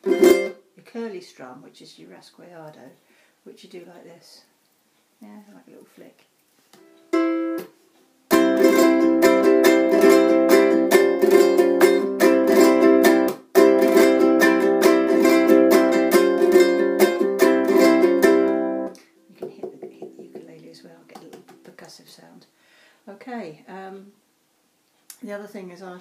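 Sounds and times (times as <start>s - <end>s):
rapid ukulele strumming: 0.0s - 0.6s, 6.8s - 20.6s.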